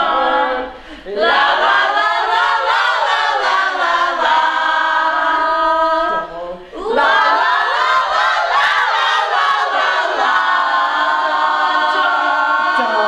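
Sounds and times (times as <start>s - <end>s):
women singing a cappella: 0.0s - 13.0s.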